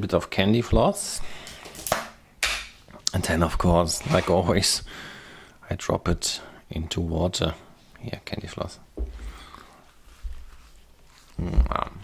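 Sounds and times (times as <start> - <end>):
plastic rustling scrape: 3.8 - 4.5.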